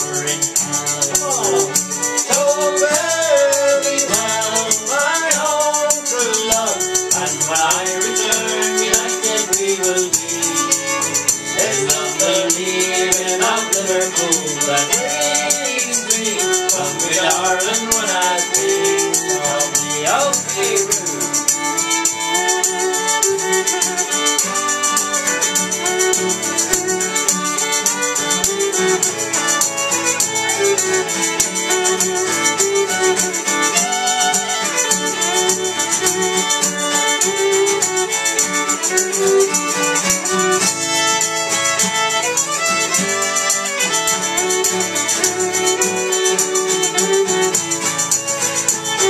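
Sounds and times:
fiddle: 0.0 - 49.0
strummed acoustic guitar: 0.0 - 49.0.

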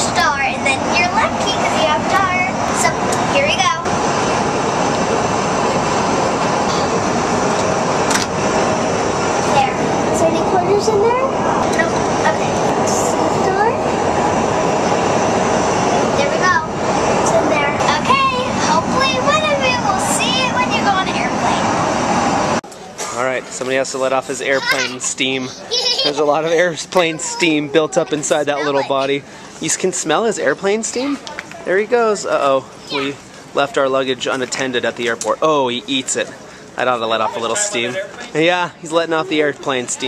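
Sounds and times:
child's voice: 0.0 - 3.9, 9.5 - 13.8, 16.2 - 21.7, 24.6 - 29.2, 32.8 - 33.2
jet airliner cabin noise: 0.0 - 32.0.

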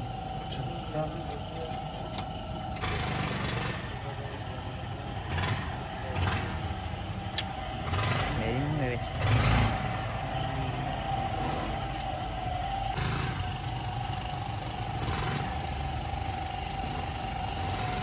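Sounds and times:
small motorcycle-type engine running: 0.0 - 18.0.

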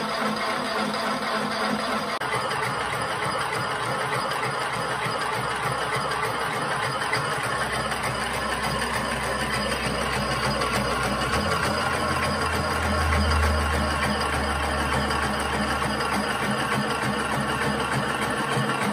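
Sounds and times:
model locomotive mechanical clatter: 0.0 - 18.9
deep hum: 7.7 - 18.2.

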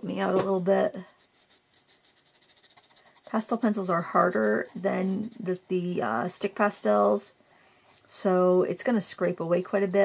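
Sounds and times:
pastel pencil scratching on paper: 0.7 - 7.2, 7.8 - 10.0.

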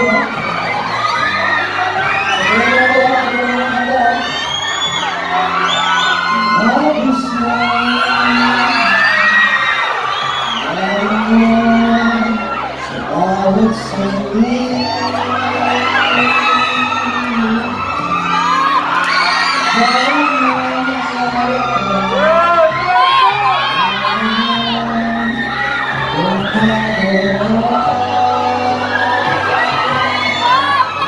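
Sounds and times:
audience cheering and screaming: 0.0 - 31.0.

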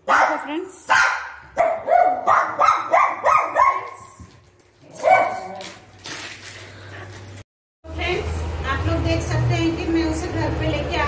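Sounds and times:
small dog barking: 0.0 - 4.0, 4.9 - 5.6.

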